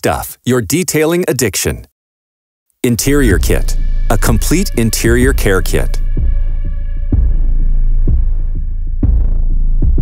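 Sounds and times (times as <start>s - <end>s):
deep pulsing bass: 3.0s - 10.0s.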